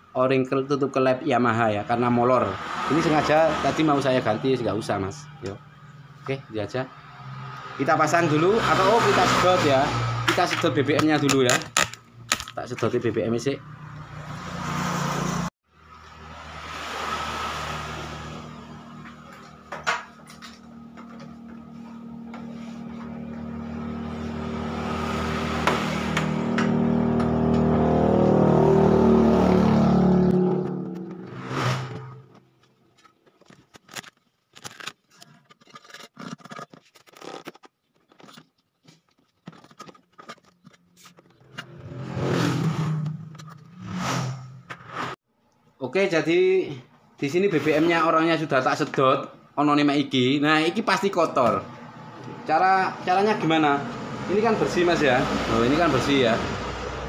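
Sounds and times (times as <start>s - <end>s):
clicks and knocks of handling: 32.3s - 41.7s.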